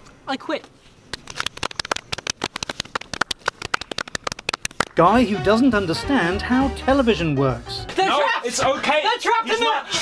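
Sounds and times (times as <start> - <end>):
hands clapping: 1.1 - 5.3.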